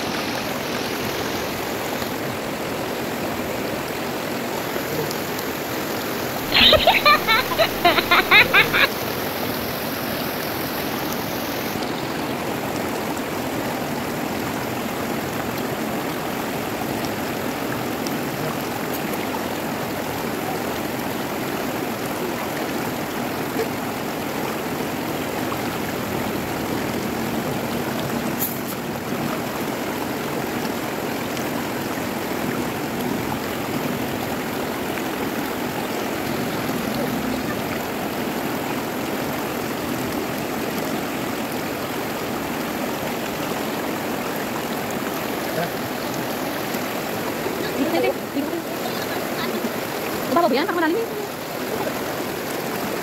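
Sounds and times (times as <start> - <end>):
river rapids rushing over rocks: 0.0 - 53.0.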